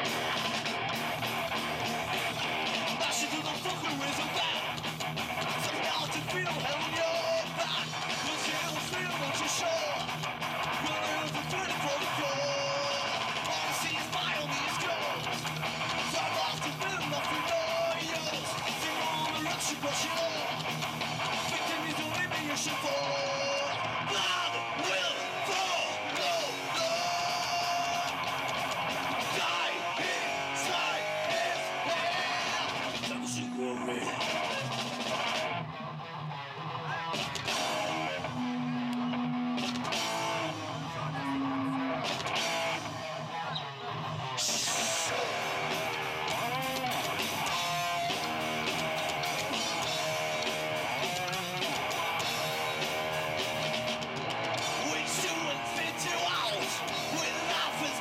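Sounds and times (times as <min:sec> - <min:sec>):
drum kit: 0:00.0 - 0:35.7, 0:37.1 - 0:43.0, 0:44.4 - 0:58.0
electric guitars: 0:00.0 - 0:58.0
live rock band: 0:00.0 - 0:58.0.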